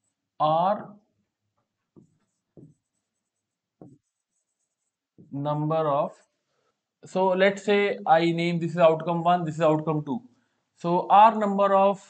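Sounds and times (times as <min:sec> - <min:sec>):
pen writing on a board: 0:01.9 - 0:05.4.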